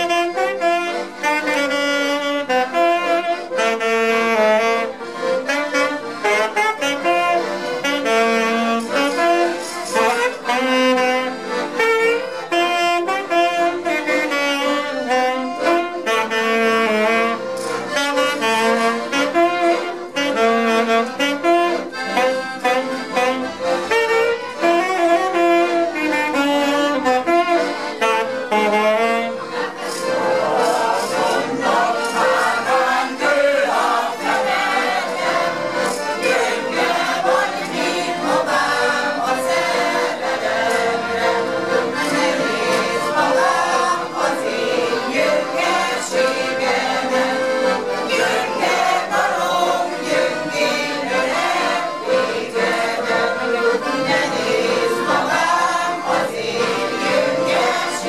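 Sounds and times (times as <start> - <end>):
accordions playing: 0.0 - 58.0
saxophone playing: 0.0 - 58.0.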